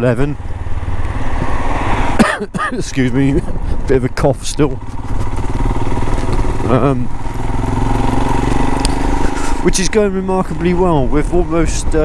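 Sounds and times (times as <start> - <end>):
motorcycle engine droning: 0.0 - 12.0.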